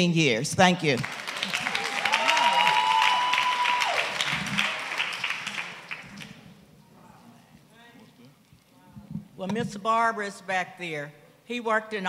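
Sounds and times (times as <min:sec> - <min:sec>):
congregation applauding: 0:00.9 - 0:06.4.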